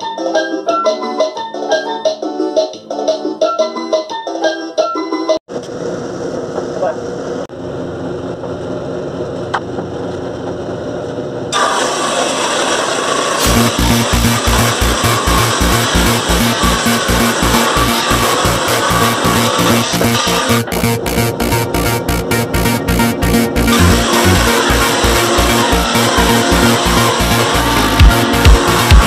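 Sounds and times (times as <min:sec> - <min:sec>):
electronic keyboard notes: 0:00.0 - 0:05.4, 0:13.4 - 0:29.0
table saw cutting wood: 0:11.5 - 0:29.0
electronic dance music: 0:13.4 - 0:29.0.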